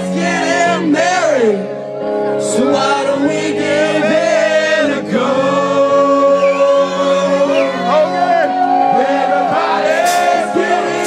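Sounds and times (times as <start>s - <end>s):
guitar: 0.0s - 11.0s
live band playing: 0.0s - 11.0s
voices singing long notes: 2.4s - 11.0s.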